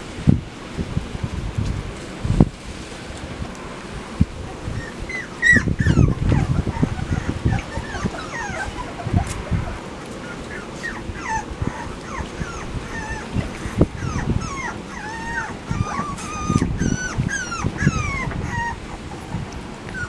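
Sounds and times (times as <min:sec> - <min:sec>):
puppies whimpering and squeaking: 0:04.4 - 0:20.0.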